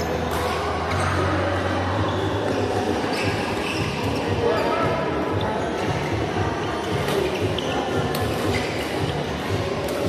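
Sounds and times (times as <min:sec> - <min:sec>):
echoing din of voices: 0:00.0 - 0:10.0
shoe squeaks on court: 0:00.0 - 0:10.0.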